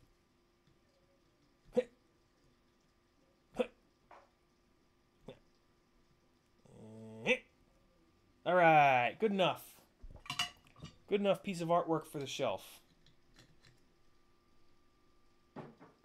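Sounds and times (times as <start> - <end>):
person humming: 6.7 - 7.3.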